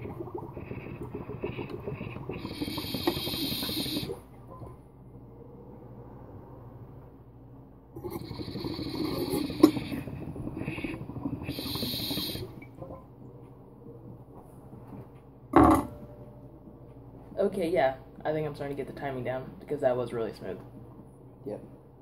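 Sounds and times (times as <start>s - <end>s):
water bubbling through glass pipe: 0.0s - 4.8s, 8.0s - 13.0s.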